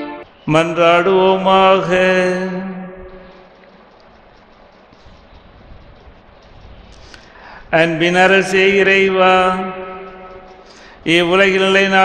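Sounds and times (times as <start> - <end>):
man chanting prayer: 0.5 - 3.4, 7.7 - 12.0.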